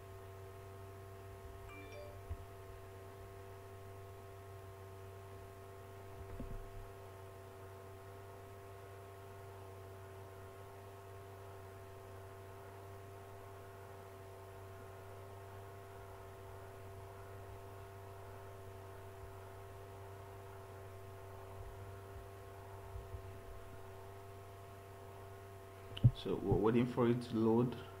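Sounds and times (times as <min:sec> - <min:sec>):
faint electrical hum: 0:00.0 - 0:28.0.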